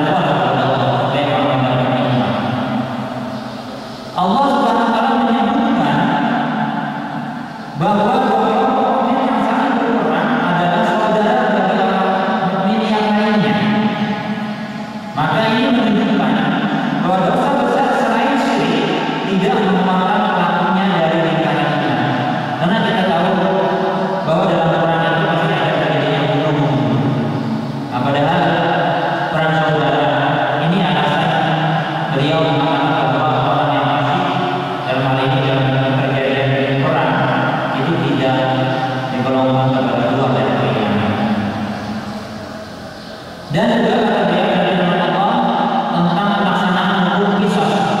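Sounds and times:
man chanting: 0:00.0 - 0:06.5, 0:07.2 - 0:48.0.

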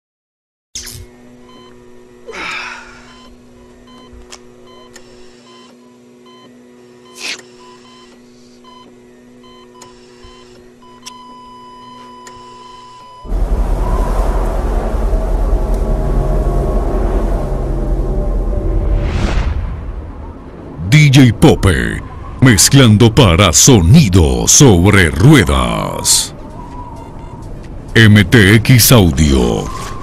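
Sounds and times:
steady low hum: 0:01.0 - 0:30.0
long steady monitor tone: 0:01.2 - 0:30.0
heart monitor beeping: 0:03.1 - 0:13.3, 0:26.4 - 0:28.0
sweeping whooshes: 0:13.2 - 0:20.9.

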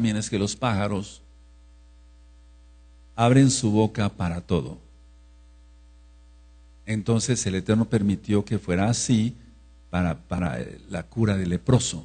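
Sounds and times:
man speaking: 0:00.0 - 0:01.3, 0:03.2 - 0:04.9, 0:06.8 - 0:12.0
electrical mains hum: 0:00.0 - 0:12.0.

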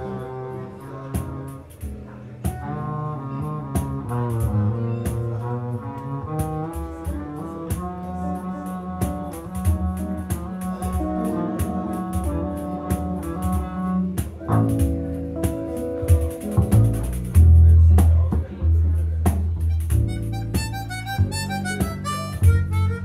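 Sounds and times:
bowed double bass: 0:00.0 - 0:23.0
harmonica melody: 0:19.7 - 0:23.0.

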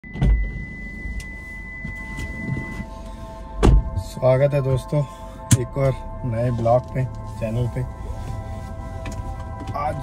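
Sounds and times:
steady high tone: 0:00.0 - 0:10.0
soft background music: 0:00.2 - 0:10.0
car door opening thump: 0:03.6 - 0:04.0
car door shutting heavily: 0:03.6 - 0:04.0.

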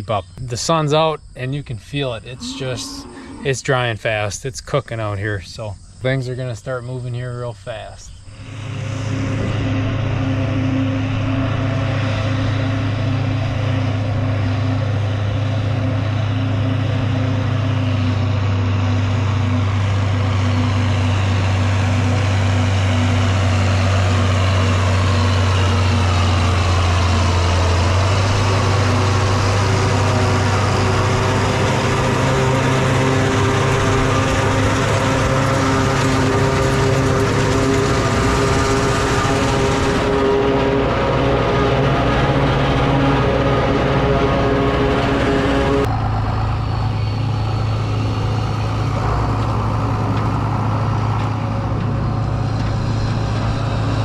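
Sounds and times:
tractor and forage chopper running: 0:00.0 - 0:54.0.

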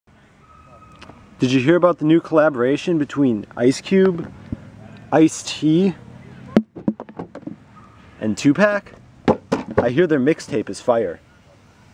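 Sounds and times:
handling knock: 0:06.5 - 0:07.6, 0:09.2 - 0:10.0.

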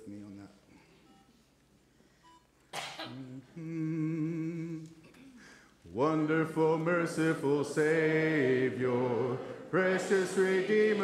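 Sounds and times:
faint beep: 0:00.8 - 0:01.5, 0:02.2 - 0:02.5.

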